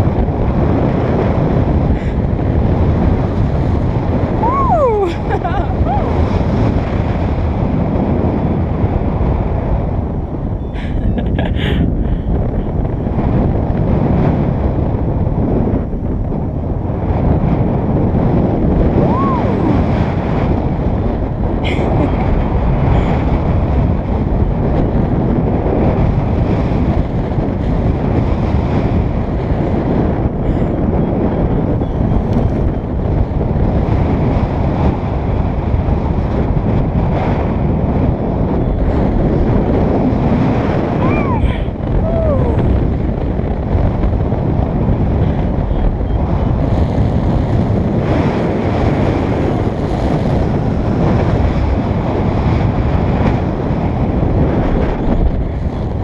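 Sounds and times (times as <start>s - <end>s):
loud wind rushing over microphone: 0.0s - 56.0s.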